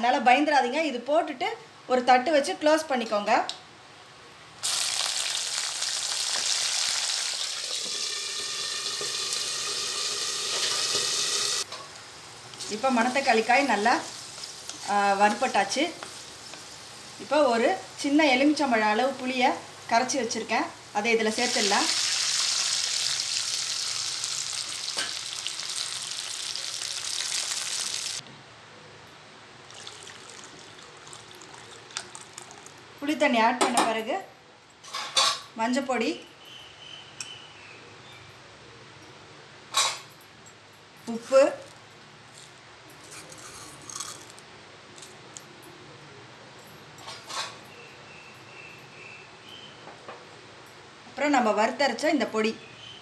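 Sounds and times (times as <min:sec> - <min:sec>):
hot oil sizzling: 0:04.6 - 0:28.2, 0:29.7 - 0:32.8.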